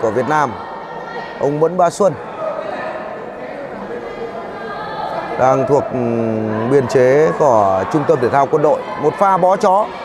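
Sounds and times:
faint distant voices: 0:00.0 - 0:10.0
sports hall murmur: 0:00.0 - 0:10.0.

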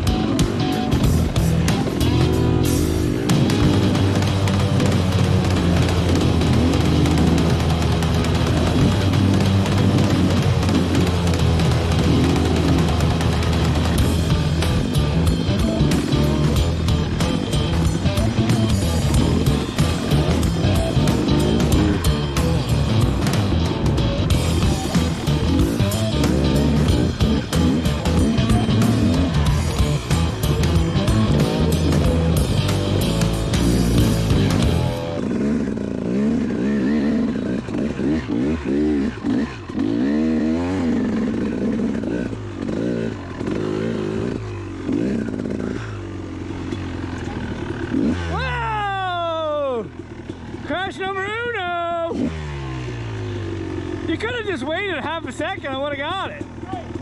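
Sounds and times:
background music with steady beat: 0:00.0 - 0:35.3
dirt bike engines revving: 0:00.0 - 0:57.0.

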